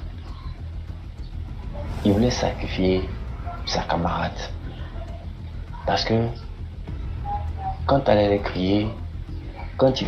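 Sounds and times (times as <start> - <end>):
low background rumble: 0.0 - 9.9.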